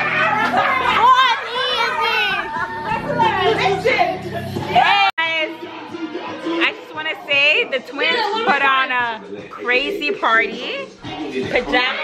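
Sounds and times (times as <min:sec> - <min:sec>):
women shouting excitedly: 0:00.0 - 0:04.0
background music: 0:00.0 - 0:12.0.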